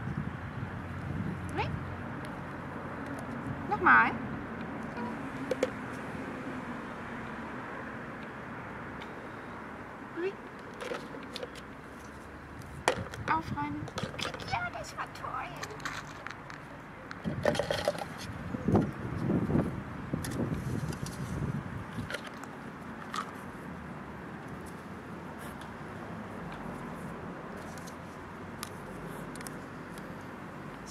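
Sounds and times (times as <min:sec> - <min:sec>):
plastic toys clattering in bucket: 0:10.8 - 0:11.6, 0:12.9 - 0:13.3, 0:13.9 - 0:14.6, 0:17.2 - 0:18.3.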